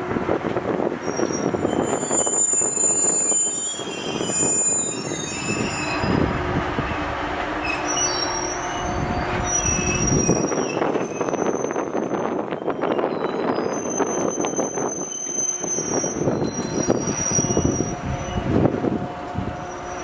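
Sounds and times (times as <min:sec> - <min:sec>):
train wheels rumbling on rail: 0:00.0 - 0:20.0
high-pitched wheel squeal: 0:01.0 - 0:07.0, 0:07.6 - 0:20.0.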